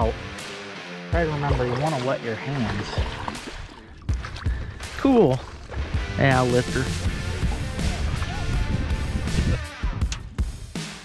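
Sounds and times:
background music: 0.0s - 11.0s
fish splashing in water: 1.5s - 6.0s.

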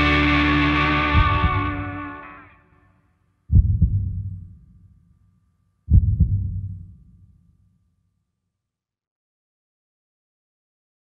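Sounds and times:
low thumps: 0.0s - 2.2s, 3.5s - 4.9s, 5.9s - 7.2s
distorted electric guitar with band: 0.0s - 2.7s.

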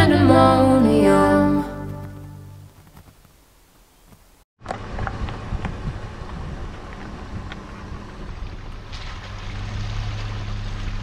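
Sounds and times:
tyres on wet dirt road: 4.6s - 11.0s
vehicle engine humming: 4.6s - 11.0s.

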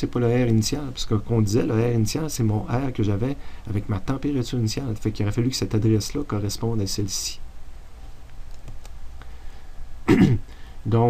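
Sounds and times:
man clearing throat: 10.1s - 10.5s.

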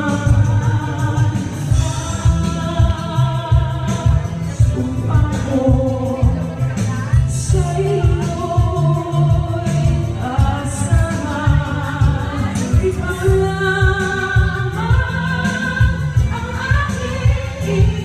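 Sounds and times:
backing track with steady beat: 0.0s - 18.0s
woman singing a ballad: 0.0s - 18.0s.

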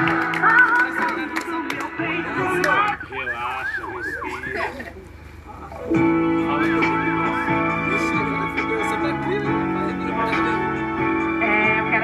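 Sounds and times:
guitar music through loudspeakers: 5.7s - 12.0s.

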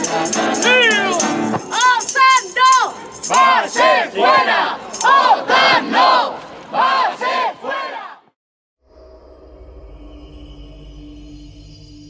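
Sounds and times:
protesters chanting in unison: 0.0s - 1.2s, 3.3s - 8.3s.

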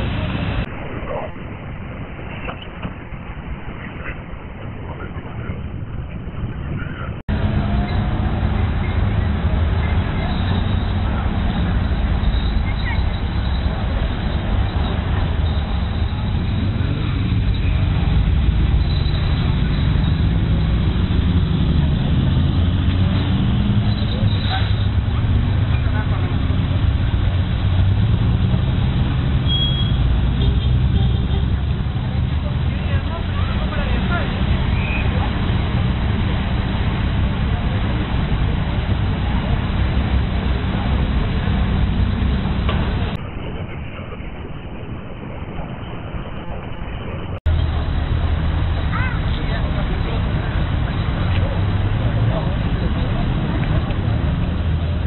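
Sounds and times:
people talking: 0.0s - 1.5s, 3.7s - 29.6s, 30.4s - 55.0s
sports car engines passing: 7.3s - 43.2s, 47.4s - 55.0s.

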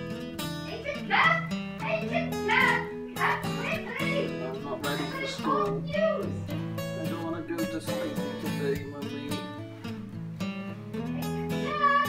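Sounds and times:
acoustic guitar music: 0.0s - 12.0s
high-pitched wavering cry: 11.1s - 12.0s.

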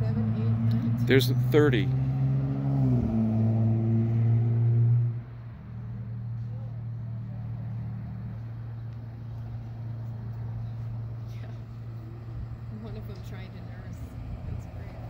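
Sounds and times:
vehicle engine idling: 5.3s - 15.0s.

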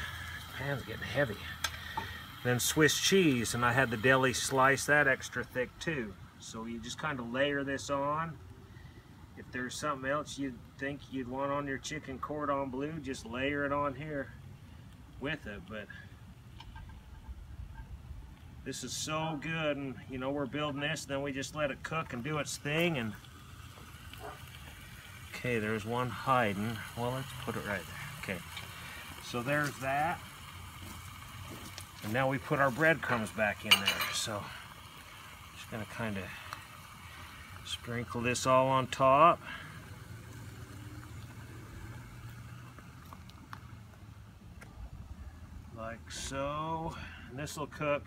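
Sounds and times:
chicken sizzling in butter: 0.0s - 5.6s, 21.4s - 43.8s
low motor hum: 38.9s - 45.8s.

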